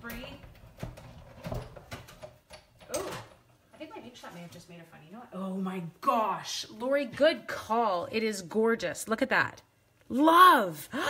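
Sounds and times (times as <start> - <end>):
knocks and creaks: 0.0 - 4.1.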